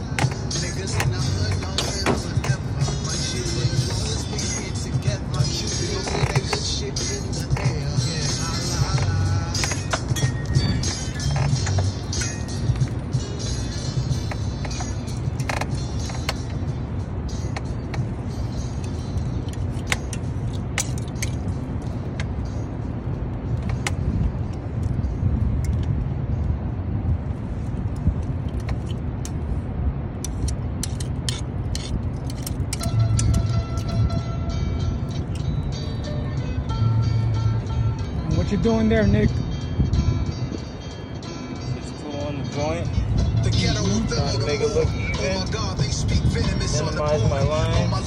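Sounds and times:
background music: 0.0s - 26.0s, 30.3s - 48.0s
steady low rumble: 0.0s - 48.0s
sharp metallic clicks and clinks: 17.4s - 22.4s, 30.2s - 34.0s.

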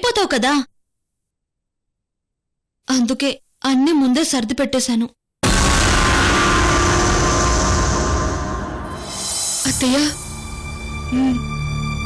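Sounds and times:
dramatic music sting: 5.4s - 11.1s.

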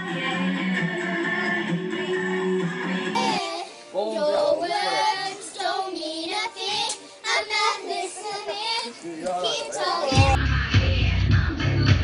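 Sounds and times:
girls singing together: 0.0s - 10.4s.

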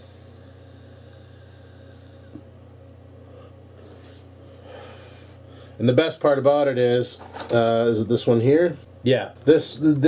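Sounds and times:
low hum: 0.0s - 5.8s.

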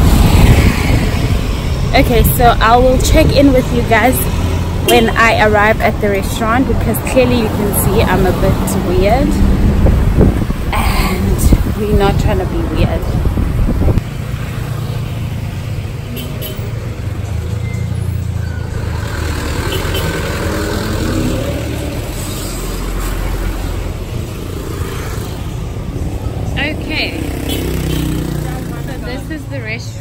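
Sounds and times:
scooter engines in traffic: 0.0s - 30.0s.

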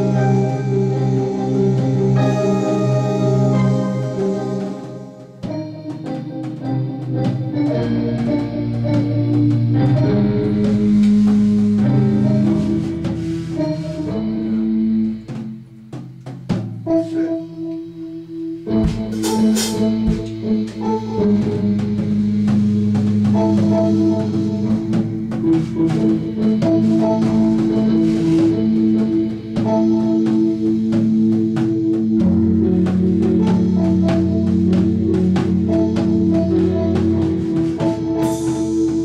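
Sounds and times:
drum kit: 0.0s - 39.0s
organ-toned keyboard chords: 0.0s - 39.0s.

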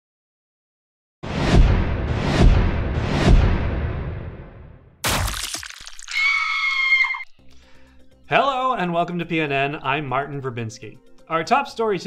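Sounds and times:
sharp crack: 5.0s - 6.2s.

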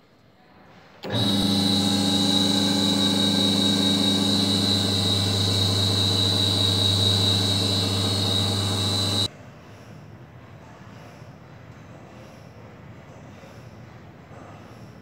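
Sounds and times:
electric motor and pump humming: 1.0s - 9.3s.

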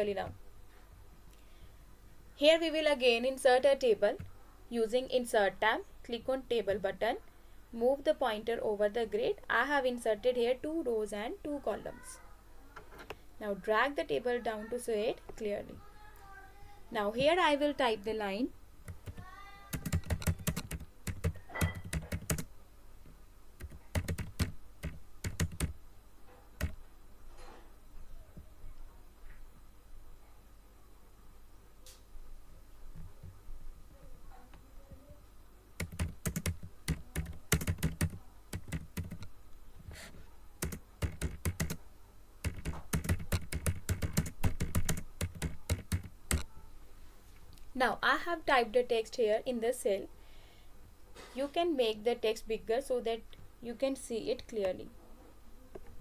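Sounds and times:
typing on computer keyboard: 18.9s - 22.5s, 23.6s - 25.8s, 26.6s - 26.8s, 35.8s - 39.3s, 40.6s - 41.8s, 42.4s - 46.5s.

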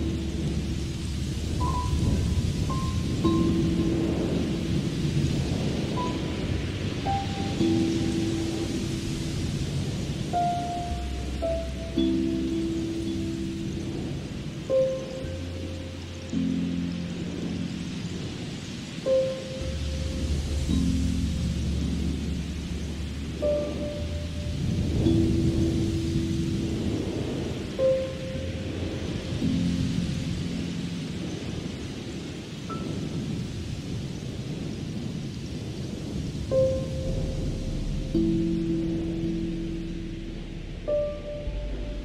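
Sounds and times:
ambient music with low chords: 0.0s - 42.0s
low thunder rumble: 0.0s - 42.0s
soft rain: 0.0s - 42.0s.

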